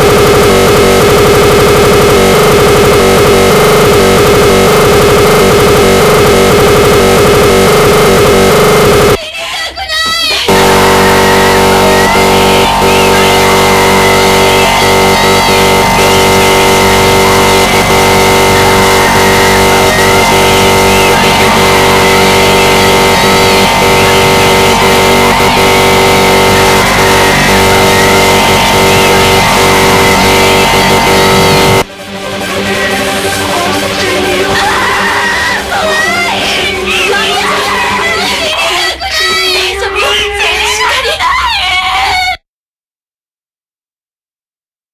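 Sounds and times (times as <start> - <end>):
loud dense music: 10.5 - 38.5.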